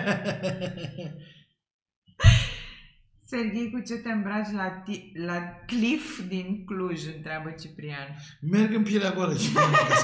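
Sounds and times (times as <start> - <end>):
person laughing: 0.0 - 1.3.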